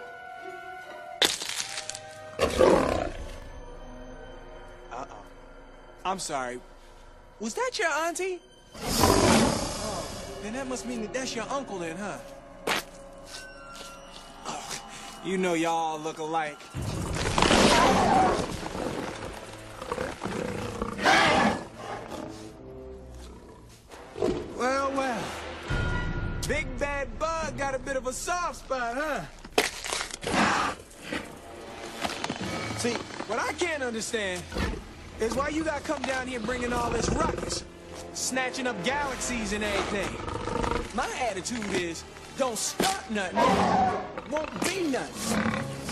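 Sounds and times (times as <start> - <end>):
orchestral film music: 0.0 - 45.9
loud crunching crack: 1.2 - 2.2, 29.4 - 31.1
monster roaring: 16.8 - 21.7.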